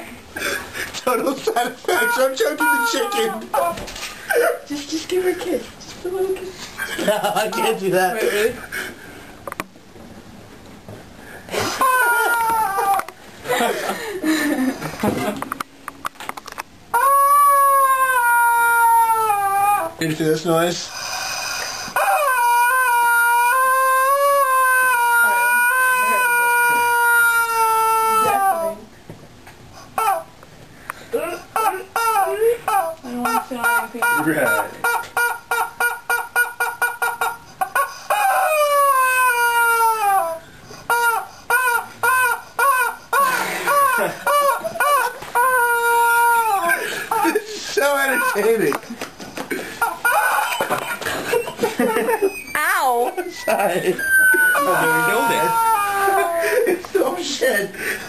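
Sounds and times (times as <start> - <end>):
rubber chicken squeaking: 31.6 - 40.3, 40.9 - 48.7, 49.8 - 56.0.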